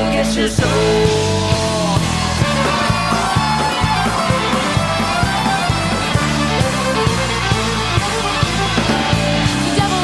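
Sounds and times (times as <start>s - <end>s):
live country-rock band: 0.0s - 10.0s
fiddle: 2.4s - 10.0s.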